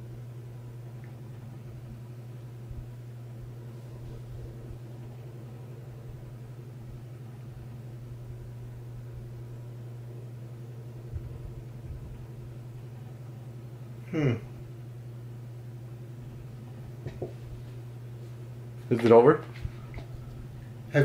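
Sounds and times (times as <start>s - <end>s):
low hum: 0.0s - 21.0s.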